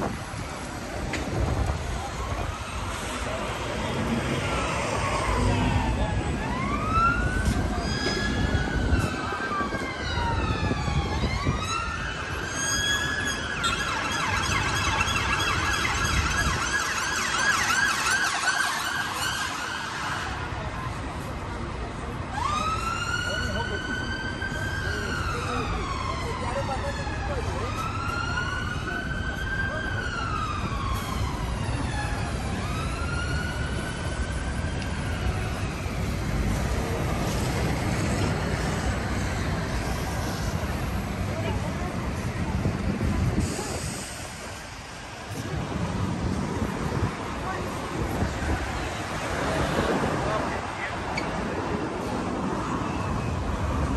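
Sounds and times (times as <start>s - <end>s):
traffic rumble: 0.0s - 53.9s
emergency siren wailing and yelping: 1.6s - 20.6s, 22.3s - 41.6s.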